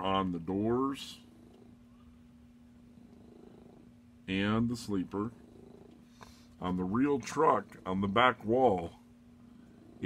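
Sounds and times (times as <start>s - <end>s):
cat purring: 0.0s - 10.0s
low continuous hum: 0.0s - 10.0s.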